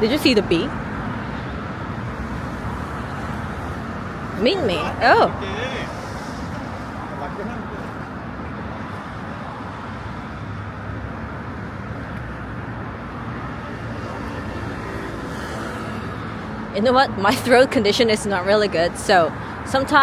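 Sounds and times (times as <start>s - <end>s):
city road traffic: 0.0s - 20.0s.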